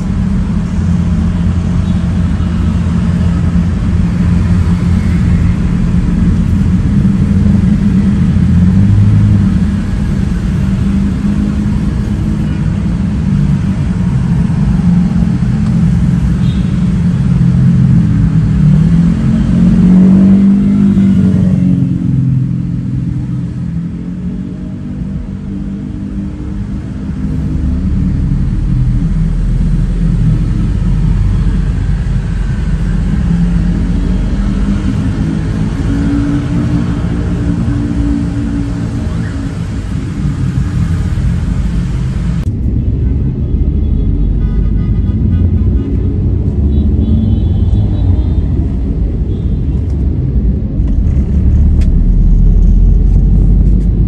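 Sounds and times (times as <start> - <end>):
engine revving: 0.0 - 25.1, 26.3 - 42.5, 50.5 - 54.0
city traffic rumble: 0.0 - 54.0.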